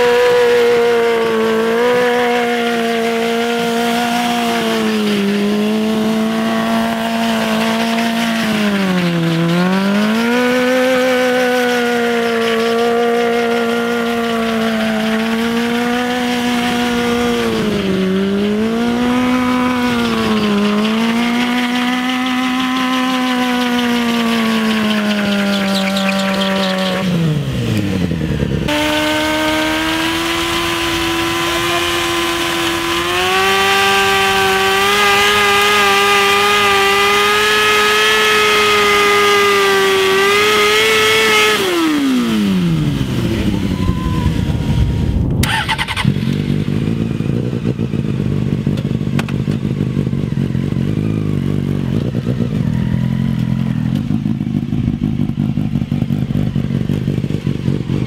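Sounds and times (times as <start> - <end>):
motorcycle engine revving high: 0.0 - 58.0.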